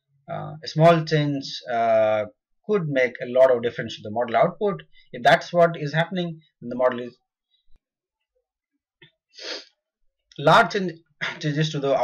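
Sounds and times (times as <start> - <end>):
man talking: 0.3 - 7.2, 10.3 - 12.0
sharp breath drawn in: 9.4 - 9.7.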